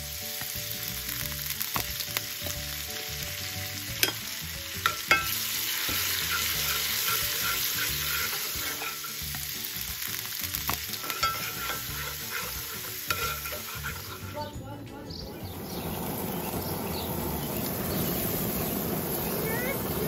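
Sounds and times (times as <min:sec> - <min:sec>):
sauce sizzling in a skillet: 0:00.0 - 0:14.6, 0:15.4 - 0:20.0
utensil clicking against pan: 0:10.7 - 0:14.3.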